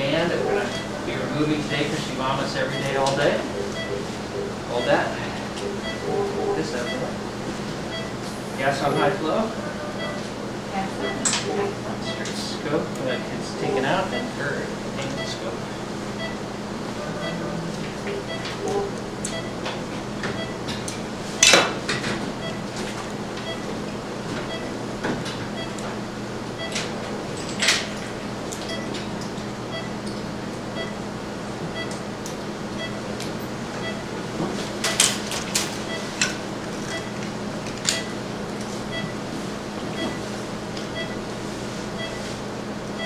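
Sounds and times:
operating room equipment hum: 0.0 - 43.0.

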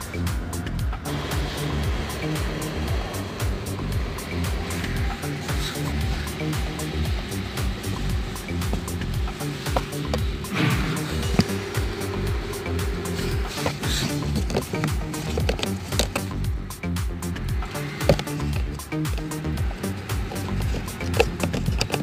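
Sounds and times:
music with low beat: 0.0 - 22.0.

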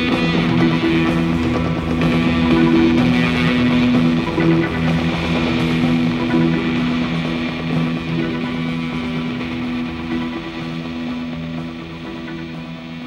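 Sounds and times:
electric guitar: 0.0 - 13.0
progressive rock instrumental: 0.0 - 13.0.

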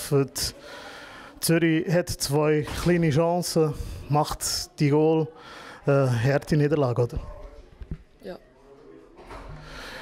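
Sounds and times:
soft breath: 0.5 - 1.4, 5.3 - 5.9, 9.3 - 10.0.

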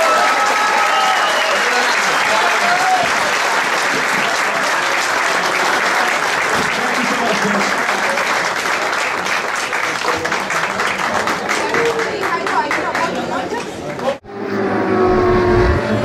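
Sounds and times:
crowd applauding: 0.0 - 14.2.

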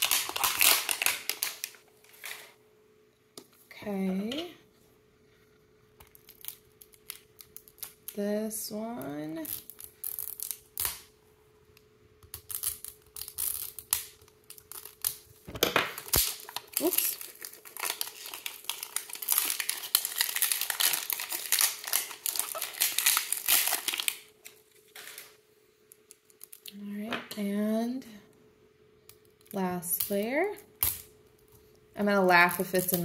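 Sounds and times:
plastic shrink-wrap crinkling and tearing: 0.0 - 2.6, 6.1 - 8.2, 9.4 - 11.1, 12.4 - 26.8.

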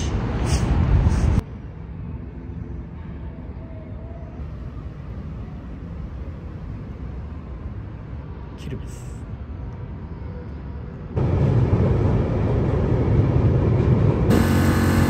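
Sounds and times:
loud low rumbling: 11.2 - 15.0.

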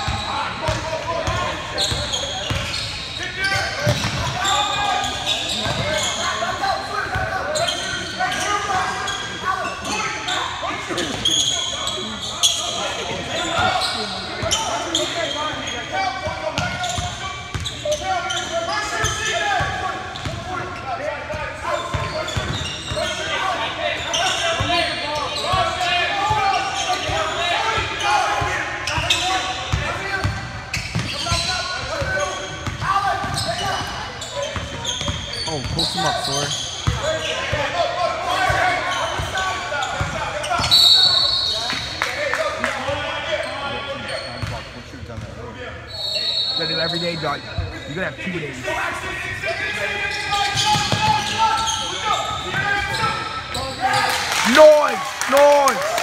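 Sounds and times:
sneaker squeaks: 0.0 - 42.0, 43.3 - 48.3, 49.5 - 54.2
hubbub of indistinct voices: 0.0 - 56.0.

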